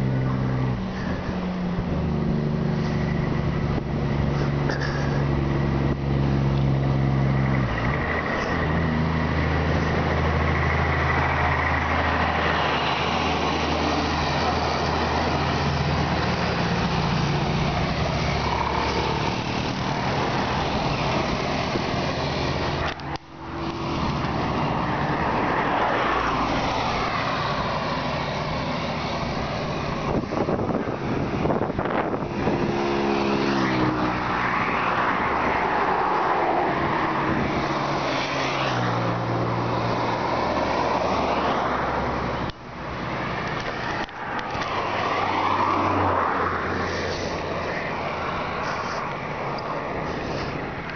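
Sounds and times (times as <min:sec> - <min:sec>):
cars and trucks passing: 0:00.0 - 0:50.9
wind rushing over microphone: 0:12.2 - 0:41.2.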